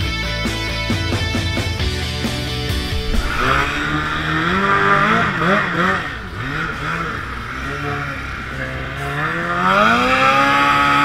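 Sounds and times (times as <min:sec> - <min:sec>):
outboard motor running: 0:02.3 - 0:11.0.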